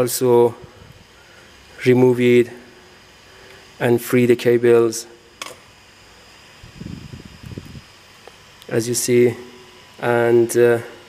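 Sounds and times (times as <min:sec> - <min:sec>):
sharp click: 0:05.4 - 0:05.7.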